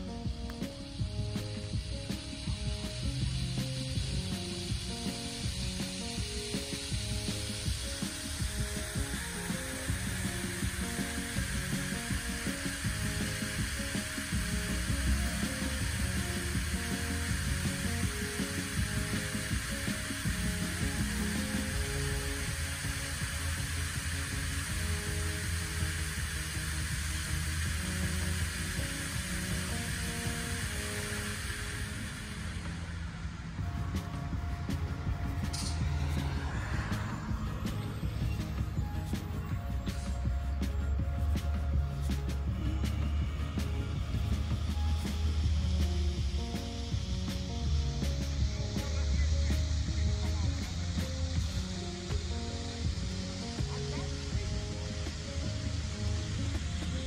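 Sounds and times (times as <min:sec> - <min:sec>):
music with short repeated notes: 0:00.0 - 0:57.0
fountain water splashing: 0:03.6 - 0:33.2.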